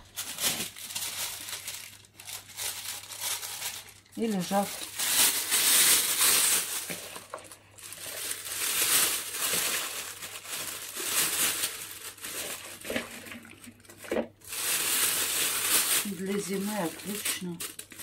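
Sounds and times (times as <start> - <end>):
plastic bag crinkling: 0.0 - 18.0.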